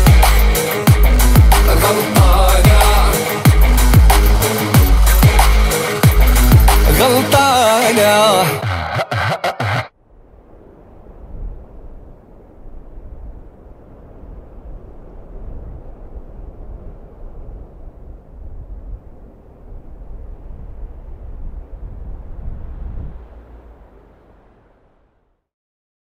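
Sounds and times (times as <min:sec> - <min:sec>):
deep gusting rumble: 0:00.0 - 0:07.7, 0:10.0 - 0:25.0
heavy rain pouring: 0:00.0 - 0:08.8.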